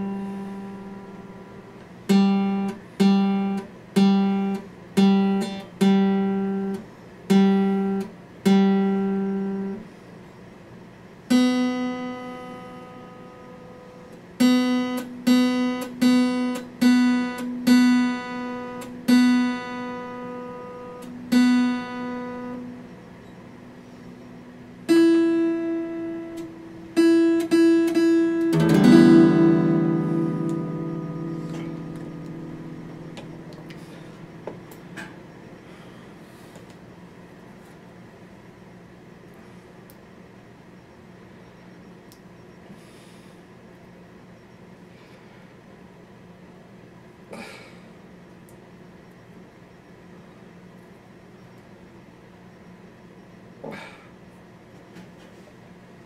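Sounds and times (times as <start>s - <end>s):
acoustic guitar chord ringing: 0.0s - 9.8s, 11.3s - 36.4s
acoustic guitar plucked notes: 0.0s - 9.8s, 11.3s - 13.8s, 14.4s - 36.0s.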